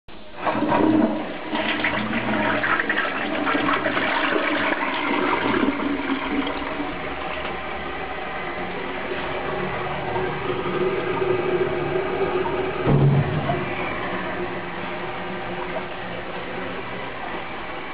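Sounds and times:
toilet flushing: 0:00.2 - 0:17.9.

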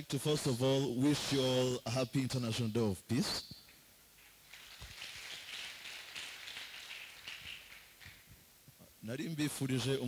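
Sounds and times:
audience applauding: 0:04.4 - 0:08.3.

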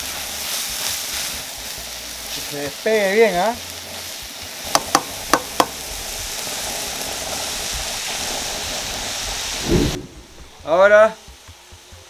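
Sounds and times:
meat and onions sizzling in a pan: 0:00.0 - 0:12.0
spatula tapping against a pan: 0:04.7 - 0:05.8, 0:11.2 - 0:12.0.

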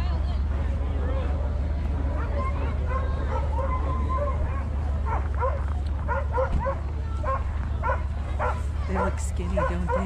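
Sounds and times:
sled dogs barking and yipping: 0:01.9 - 0:10.0.

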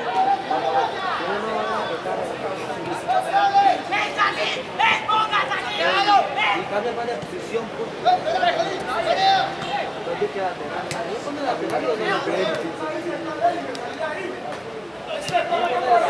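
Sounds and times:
people calling out and chattering: 0:00.0 - 0:16.0.

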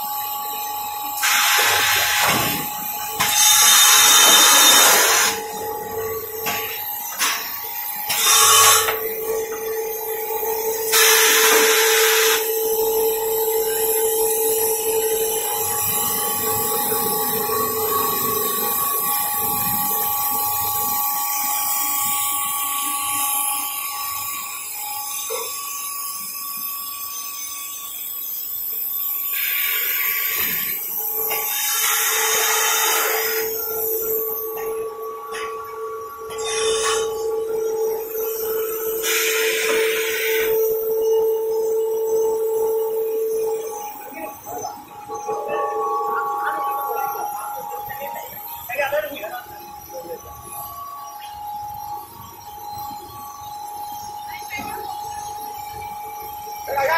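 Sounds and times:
machine high-pitched whine: 0:00.0 - 0:56.9.

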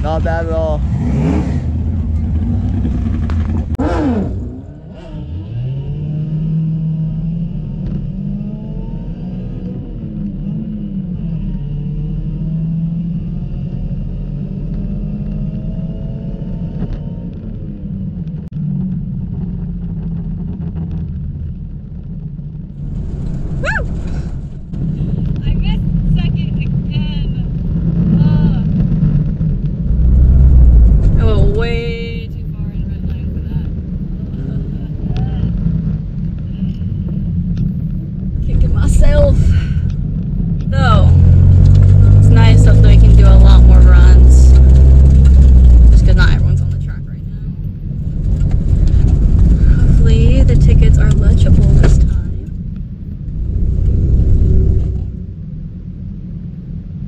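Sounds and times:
car engine running at low revs: 0:00.0 - 0:57.0.

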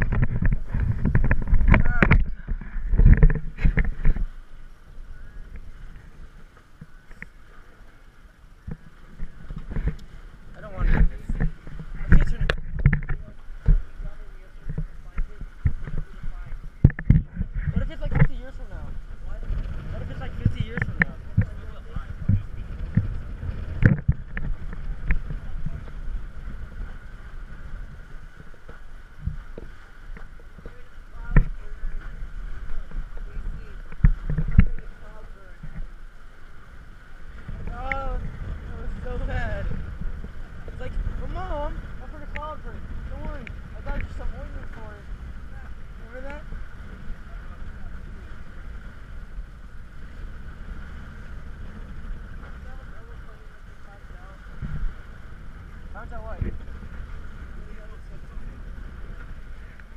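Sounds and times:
water splashing against hull: 0:00.0 - 0:59.9
wind rumbling on microphone: 0:00.0 - 0:59.9.

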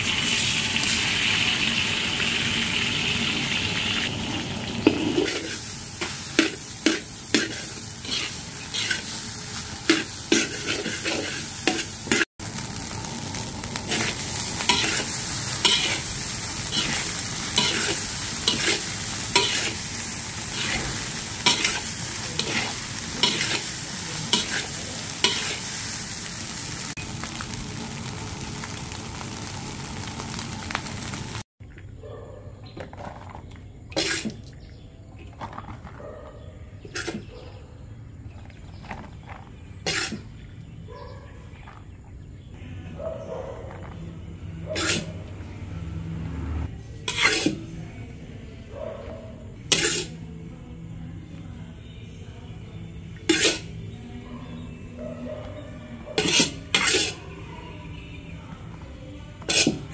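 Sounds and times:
eggs sizzling in hot oil: 0:00.0 - 0:31.5, 0:49.7 - 0:50.2, 0:53.2 - 0:53.8
metal spatula scraping a wok: 0:04.8 - 0:12.3, 0:13.8 - 0:26.8, 0:39.8 - 0:40.3, 0:44.7 - 0:45.2, 0:46.9 - 0:47.8, 0:49.6 - 0:50.3, 0:53.2 - 0:53.8, 0:56.2 - 0:57.4, 0:59.4 - 0:59.9.

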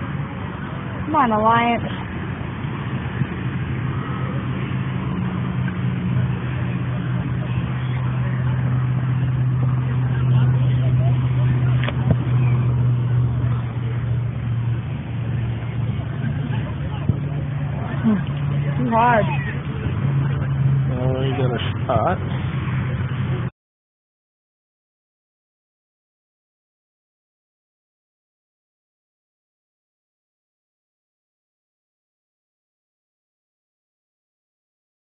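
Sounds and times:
low engine-like hum: 0:00.0 - 0:23.5.

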